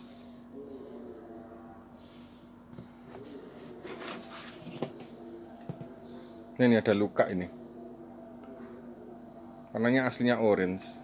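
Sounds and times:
steady low hum: 0:00.0 - 0:11.0
soft rubbing of helmet: 0:02.8 - 0:05.2.

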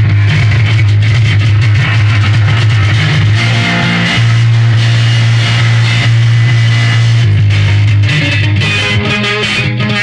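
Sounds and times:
steady low drone: 0:00.0 - 0:08.1
distorted electric guitar noise: 0:00.0 - 0:10.0.

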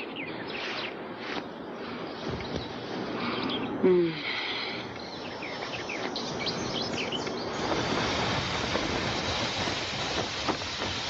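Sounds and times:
birds chirping: 0:00.0 - 0:08.2
wind rushing: 0:06.2 - 0:11.0.

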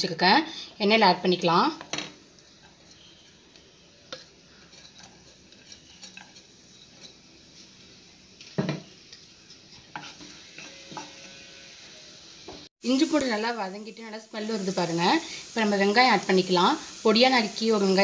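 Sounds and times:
garlic and ginger sizzling in oil: 0:00.0 - 0:18.0
spatula scraping and tapping pan: 0:01.8 - 0:07.7, 0:08.4 - 0:11.5.

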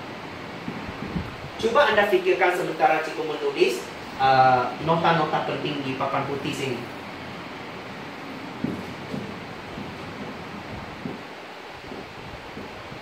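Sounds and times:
background hiss: 0:00.0 - 0:13.0.

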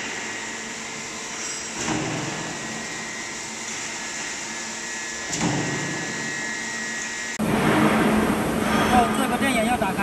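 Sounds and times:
machine mechanical hum: 0:00.0 - 0:10.0
machine clunk: 0:01.7 - 0:02.7, 0:05.3 - 0:06.2.

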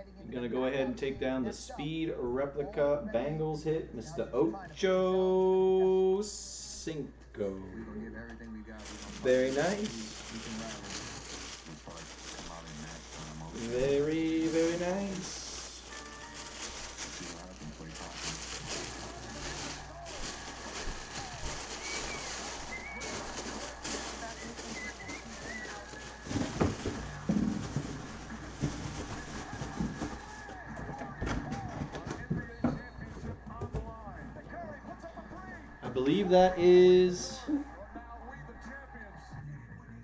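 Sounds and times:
plastic bag crinkling: 0:08.7 - 0:30.6
cardboard box handled: 0:08.8 - 0:30.5.

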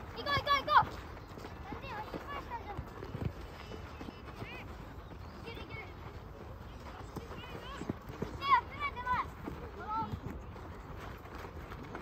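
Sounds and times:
running footsteps on dirt: 0:00.0 - 0:12.0.

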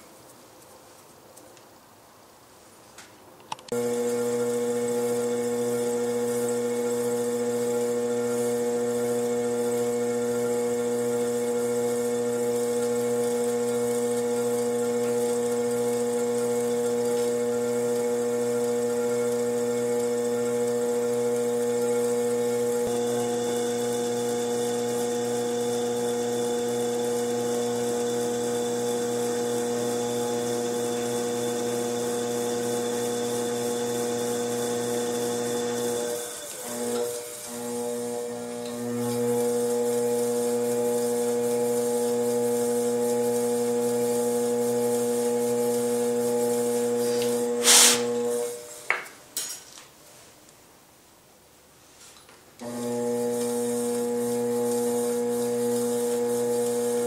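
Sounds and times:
potter's wheel motor humming: 0:03.7 - 0:48.7, 0:52.6 - 0:57.0.

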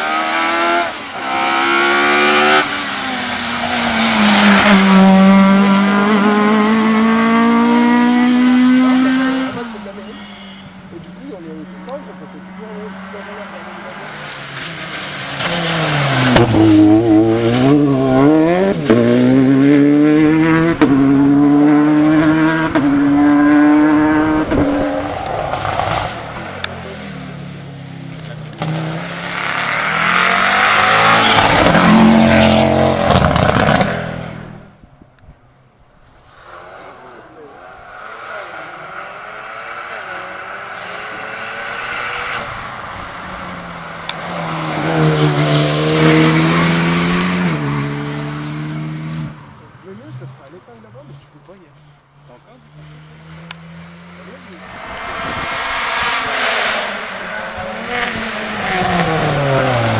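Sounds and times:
car passing close: 0:00.0 - 0:34.8, 0:35.7 - 0:59.9
rally car engines accelerating: 0:00.0 - 0:34.8, 0:36.4 - 0:59.9.

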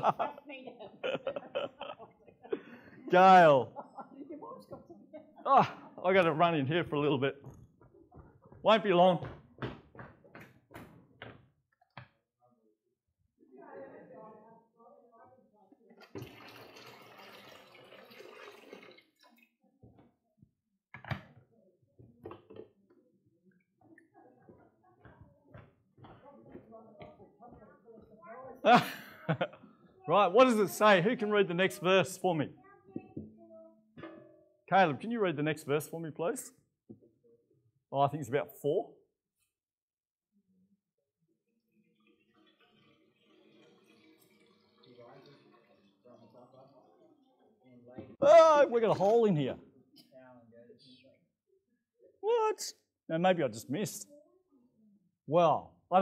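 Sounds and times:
faint water running: 0:15.8 - 0:19.6, 0:41.9 - 0:48.2.

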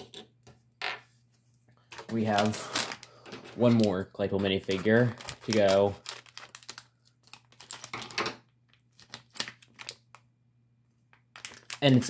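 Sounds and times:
plastic foil bag crinkling: 0:02.1 - 0:10.2, 0:11.2 - 0:12.0.

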